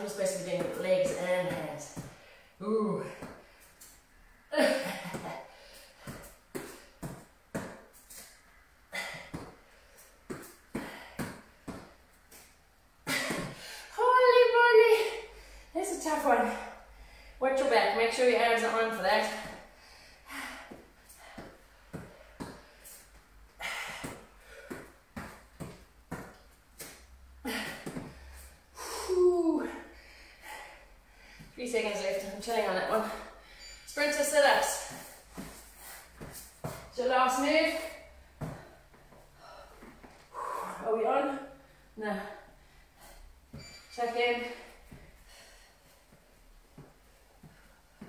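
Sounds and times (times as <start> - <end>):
woman breathing hard and groaning: 38.4 - 41.0.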